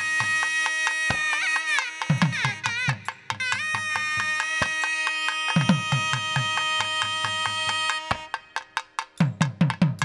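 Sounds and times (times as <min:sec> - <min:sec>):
reed pipes holding long note: 0:00.0 - 0:08.8
drum strokes: 0:00.0 - 0:10.0.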